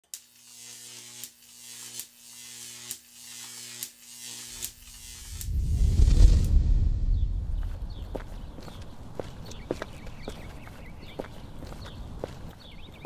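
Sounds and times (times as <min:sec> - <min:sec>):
electric humming buzz: 0:00.3 - 0:09.3
sharp electric zap: 0:00.4 - 0:07.3
deep rumble: 0:05.1 - 0:09.2.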